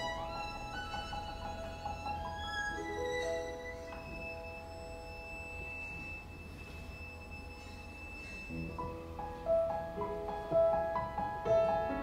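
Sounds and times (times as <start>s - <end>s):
violin high sustained note: 0.0s - 9.2s.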